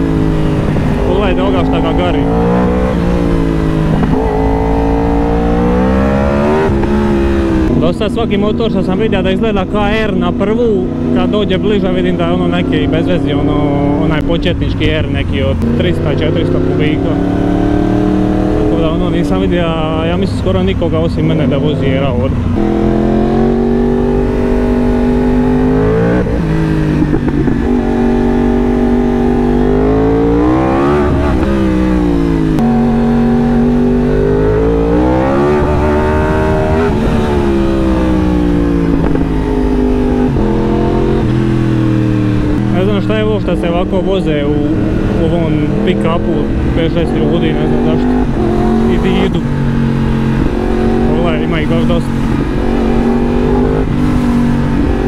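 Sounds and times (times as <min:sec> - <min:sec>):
motorcycle engine accelerating: 0:00.0 - 0:55.0.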